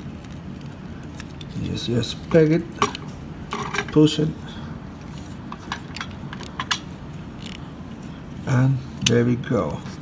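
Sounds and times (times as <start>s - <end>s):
plastic parts clicking and scraping: 2.7s - 4.1s, 5.0s - 7.7s.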